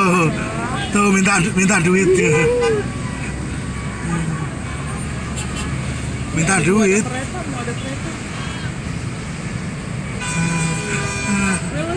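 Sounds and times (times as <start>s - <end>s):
city road traffic rumble: 0.0s - 11.9s.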